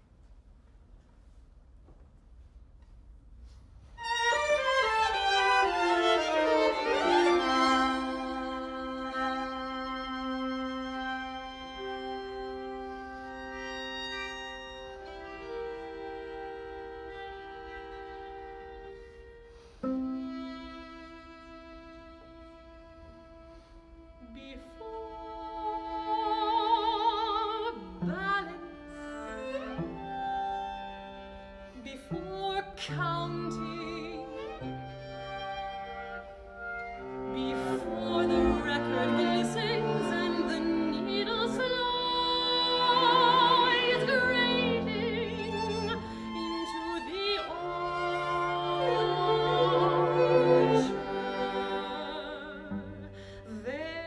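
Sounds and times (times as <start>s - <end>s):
string quartet sustained chords: 4.0s - 54.0s.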